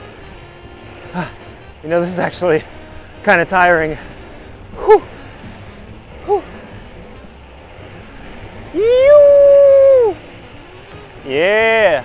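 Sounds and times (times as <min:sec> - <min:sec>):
road and wind noise: 0:00.0 - 0:12.0
person shouting woo: 0:08.7 - 0:10.2.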